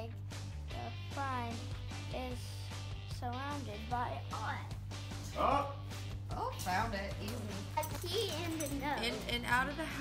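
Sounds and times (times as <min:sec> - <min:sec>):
wordless shout: 0:05.3 - 0:05.8.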